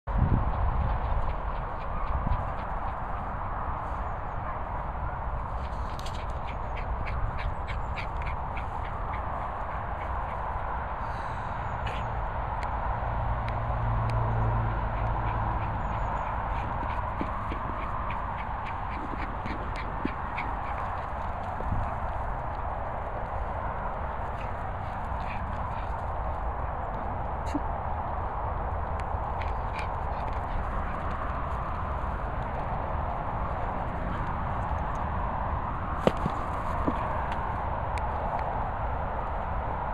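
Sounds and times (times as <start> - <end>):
steady background noise: 0.1 - 39.9
faint light ticks: 13.4 - 14.2.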